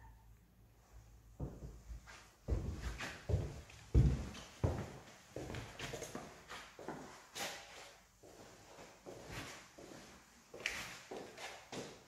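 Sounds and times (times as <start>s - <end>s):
footsteps in empty house: 0.0s - 12.0s.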